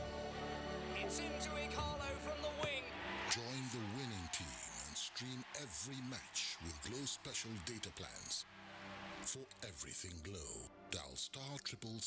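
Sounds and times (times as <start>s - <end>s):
advert soundtrack music: 0.0s - 3.3s, 8.4s - 11.4s.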